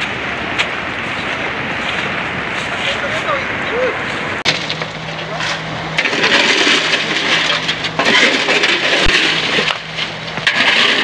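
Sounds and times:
rushing floodwater: 0.0 - 6.8.

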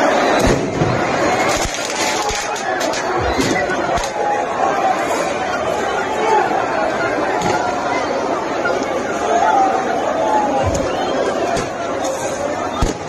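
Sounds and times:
crowd shouting and chattering: 0.0 - 13.0.

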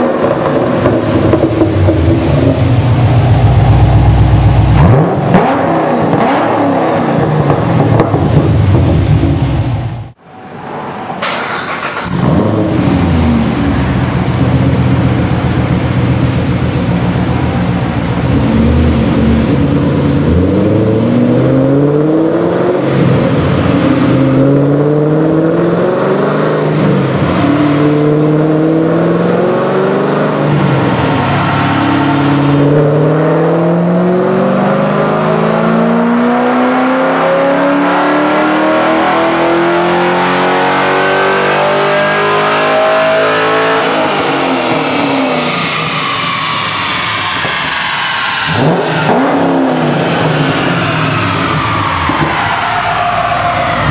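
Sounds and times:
car engine revving at full throttle: 0.0 - 10.2, 11.4 - 53.9.

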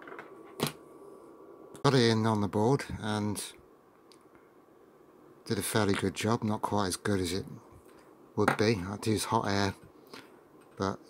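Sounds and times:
man speaking: 1.8 - 3.6, 5.5 - 7.7, 8.4 - 9.8, 10.8 - 11.0.

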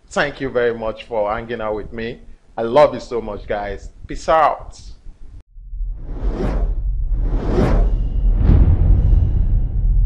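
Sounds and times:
deep rumble: 5.4 - 10.0
cinematic whooshes: 5.8 - 10.0.

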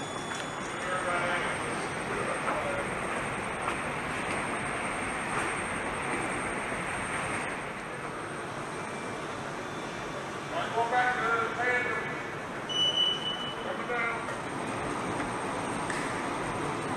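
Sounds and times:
faint high whine: 0.0 - 14.3
steady rushing hall noise: 0.0 - 16.9.

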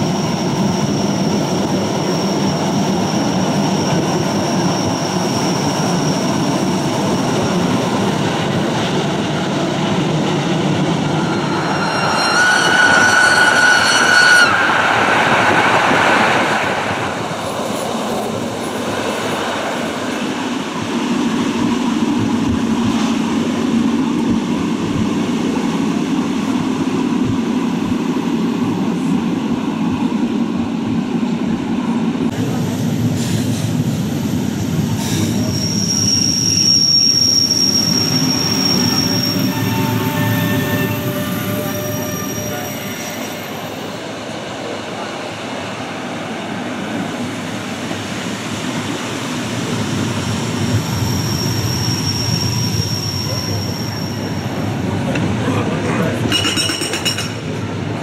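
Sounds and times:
train wheels squealing: 0.0 - 16.6, 32.6 - 55.3, 56.0 - 57.6
electric train running on rails: 0.0 - 58.0.

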